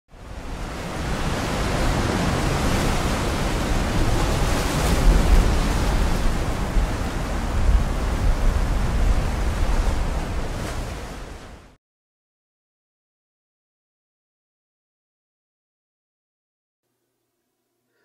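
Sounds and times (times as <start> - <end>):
ocean surf on rocks: 0.2 - 11.8.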